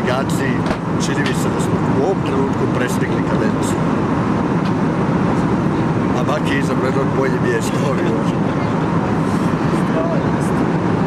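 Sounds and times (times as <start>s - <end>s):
airliner cabin engine rumble: 0.0s - 11.0s.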